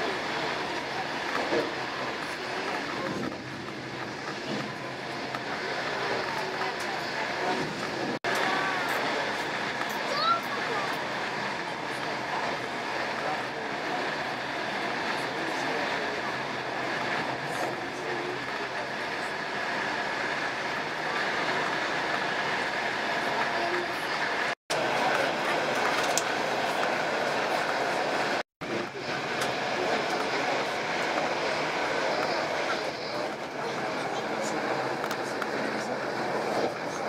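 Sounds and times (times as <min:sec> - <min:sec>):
train running noise: 0:00.0 - 0:37.0.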